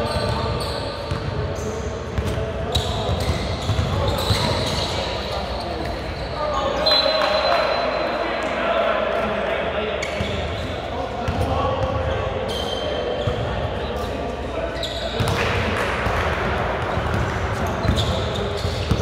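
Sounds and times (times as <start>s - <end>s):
indistinct echoing voices: 0.0s - 19.0s.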